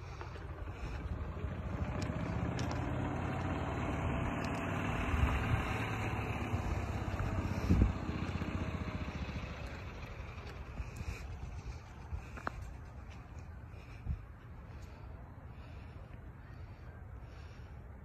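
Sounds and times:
engine rumble: 0.0s - 18.0s.

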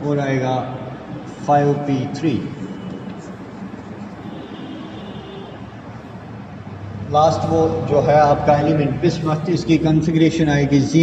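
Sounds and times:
room hiss and rumble: 0.0s - 11.0s.

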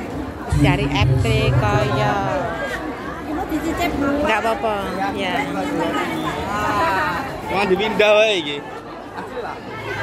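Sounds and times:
chatter of several voices: 0.0s - 10.0s
loud voice: 0.5s - 2.6s.

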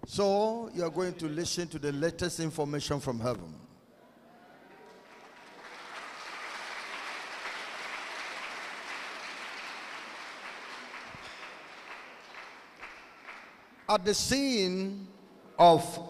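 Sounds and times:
congregation applauding: 4.7s - 14.0s.

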